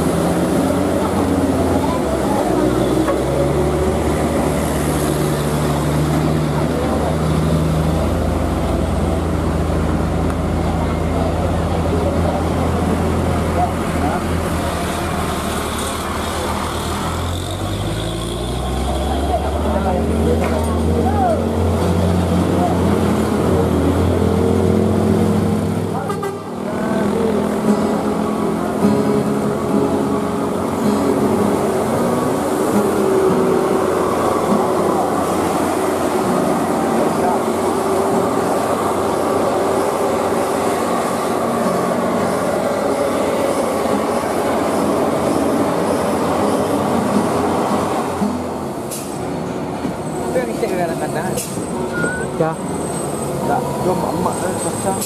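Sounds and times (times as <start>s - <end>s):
heavy diesel engines labouring: 0.0s - 55.0s
traffic noise: 0.0s - 55.0s.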